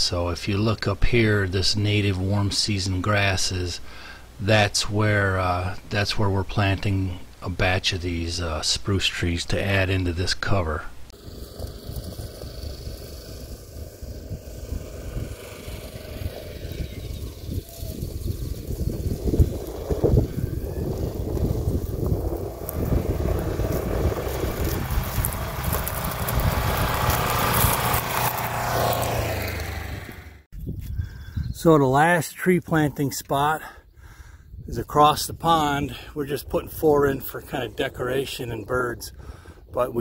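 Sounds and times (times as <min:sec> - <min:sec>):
vehicle engine running: 0:11.1 - 0:30.5.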